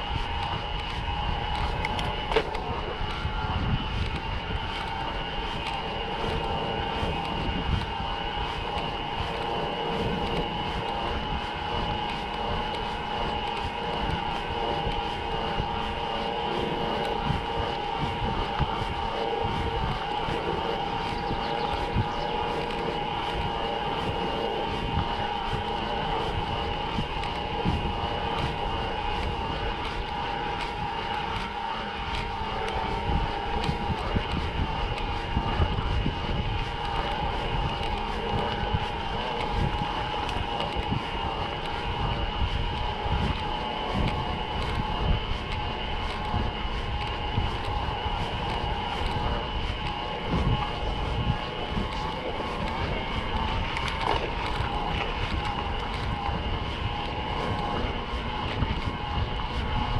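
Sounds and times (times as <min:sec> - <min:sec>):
steady high whine: 0:00.0 - 0:59.9
wind noise: 0:00.0 - 0:59.9.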